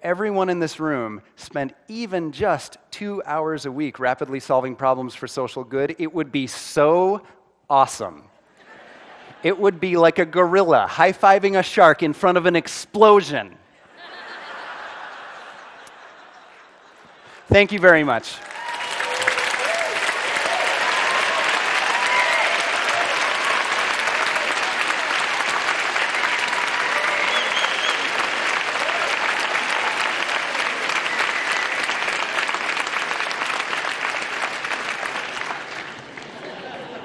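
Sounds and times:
large audience applauding: 0:17.5 - 0:37.0.

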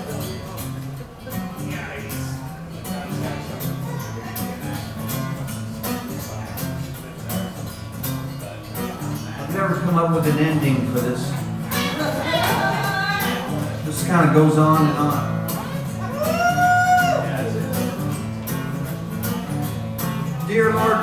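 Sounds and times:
acoustic guitar strumming: 0:00.0 - 0:21.0.

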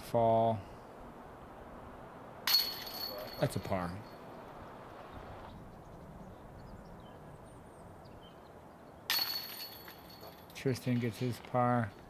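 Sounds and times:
faint outdoor ambience: 0:00.0 - 0:12.0
disc hitting metal basket chains: 0:02.4 - 0:03.9, 0:09.1 - 0:11.3.

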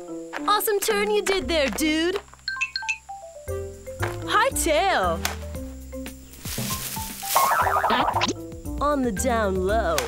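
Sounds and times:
background music: 0:00.0 - 0:10.0
warbling wobbling effect: 0:07.4 - 0:08.3.

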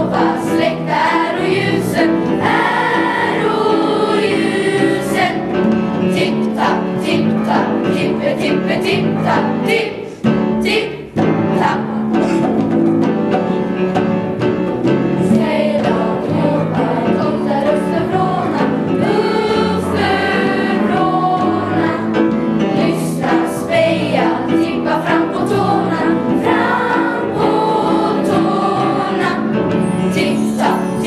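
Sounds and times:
choir singing: 0:00.0 - 0:12.1, 0:15.2 - 0:31.0.

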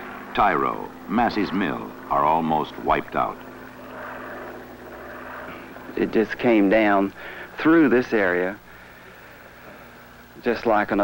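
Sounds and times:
aircraft engine drone: 0:00.0 - 0:11.0.

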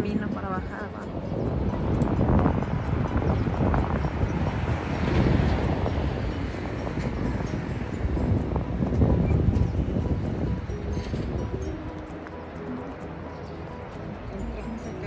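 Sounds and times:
wind on phone microphone: 0:00.0 - 0:12.3.

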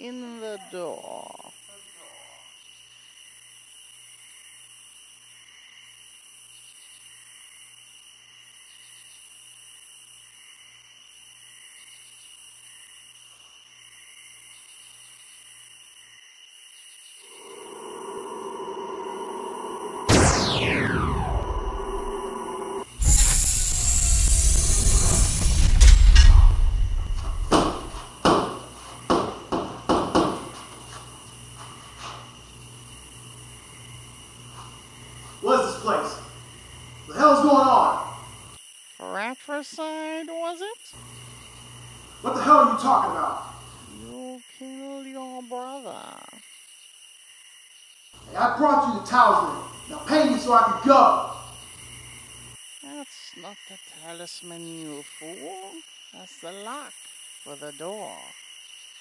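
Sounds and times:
faint hum: 0:17.2 - 0:28.1
rising drone: 0:17.2 - 0:28.1
sharp falling whoosh: 0:19.9 - 0:28.1
deep rumbling boom: 0:20.0 - 0:28.0
sharp clunks: 0:27.2 - 0:30.4.

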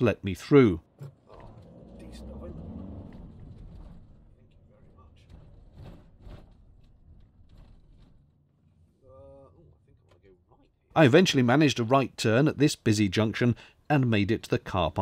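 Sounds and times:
road noise: 0:00.0 - 0:06.4
van engine: 0:00.8 - 0:08.2.

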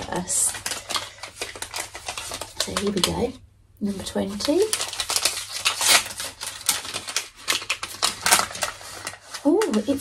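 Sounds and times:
paper bag crackling and rustling: 0:00.0 - 0:10.0.

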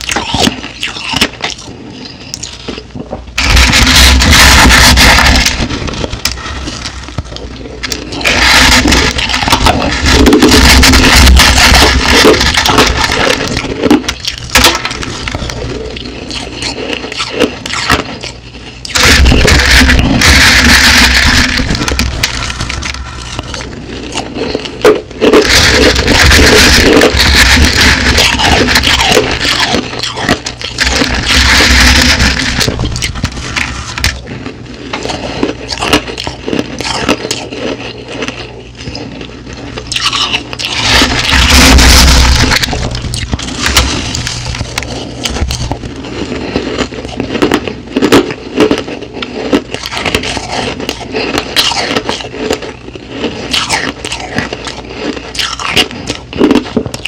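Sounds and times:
crushed ice crunching and scraping: 0:03.4 - 0:57.0.

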